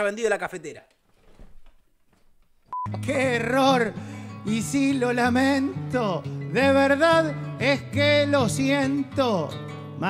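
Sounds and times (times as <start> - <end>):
short electronic beep: 2.7 - 3.0
guitar music: 2.9 - 10.0.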